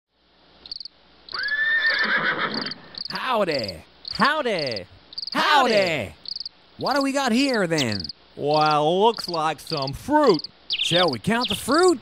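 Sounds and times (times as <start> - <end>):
crickets chirping: 0.2 - 12.0
held pitched animal call: 1.3 - 3.2.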